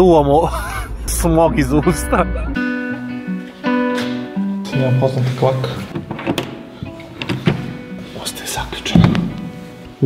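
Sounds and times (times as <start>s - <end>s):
door handle latch clicking and rattling: 6.0s - 6.6s.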